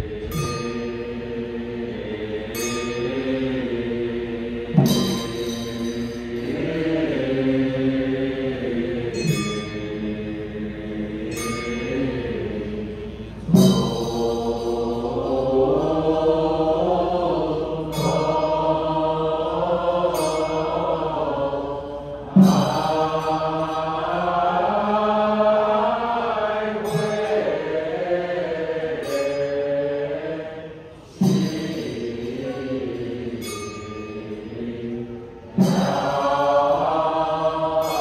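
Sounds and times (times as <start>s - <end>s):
voices chanting liturgy: 0.0s - 38.0s.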